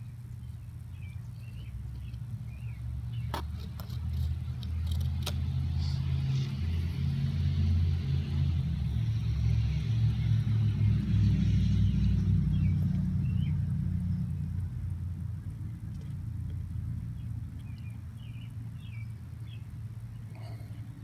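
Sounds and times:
low steady rumble: 0:00.0 - 0:21.0.

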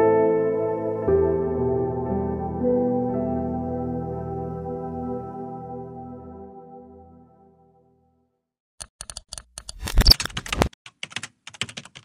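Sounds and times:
typing on computer keyboard: 0:08.8 - 0:12.0.

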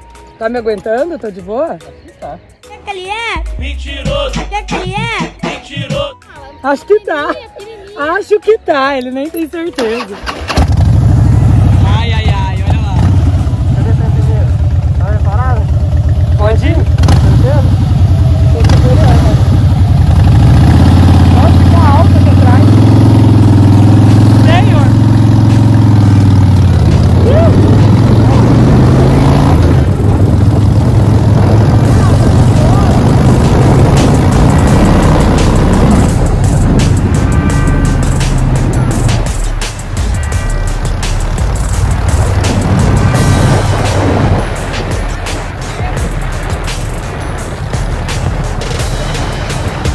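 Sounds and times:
motorcycle engine accelerating: 0:09.8 - 0:49.9
wind rushing on microphone: 0:26.7 - 0:40.2, 0:41.4 - 0:49.9.

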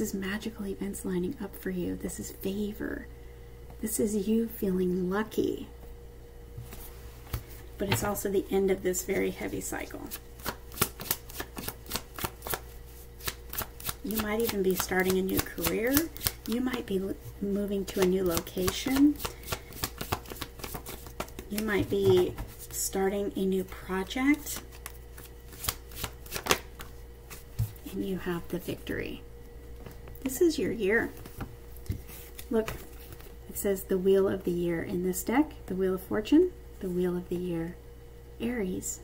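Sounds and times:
cards being shuffled: 0:10.0 - 0:16.9, 0:17.7 - 0:22.8, 0:24.0 - 0:27.8, 0:31.0 - 0:33.4.

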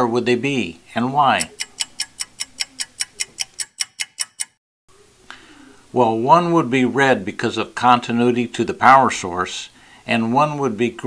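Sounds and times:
clock ticking: 0:01.2 - 0:04.6.

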